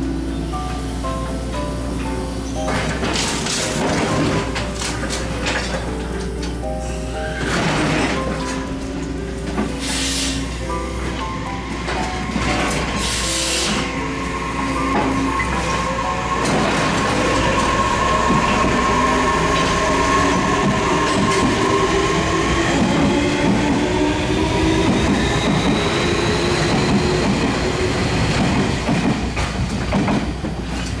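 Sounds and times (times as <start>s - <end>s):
music: 0.0s - 29.1s
electric train motors whining: 0.0s - 29.8s
train cars rumbling past: 0.0s - 31.0s.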